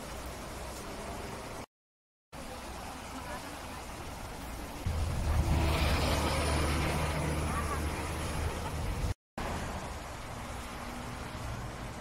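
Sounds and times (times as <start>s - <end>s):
vehicle engine humming: 4.9s - 12.0s.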